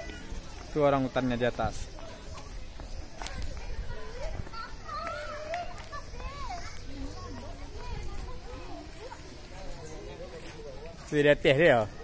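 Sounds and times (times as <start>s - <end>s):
children's voices: 0.0s - 11.1s.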